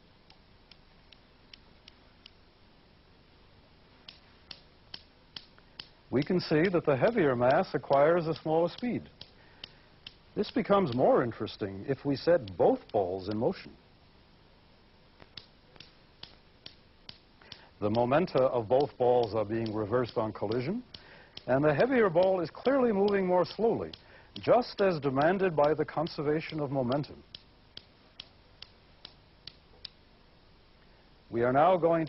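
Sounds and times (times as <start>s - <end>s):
steel balls clicking together: 4.1s - 11.1s, 15.2s - 30.0s.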